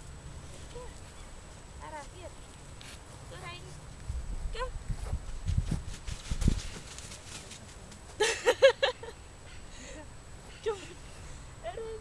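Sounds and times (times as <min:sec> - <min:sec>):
rustling: 0:00.0 - 0:08.2.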